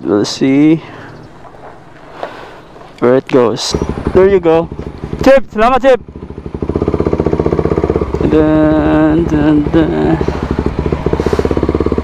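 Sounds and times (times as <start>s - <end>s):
motorcycle engine pulling away: 1.1s - 12.0s.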